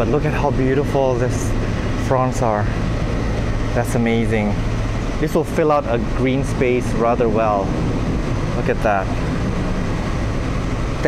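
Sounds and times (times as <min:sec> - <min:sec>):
low rumbling background noise: 0:00.0 - 0:11.0.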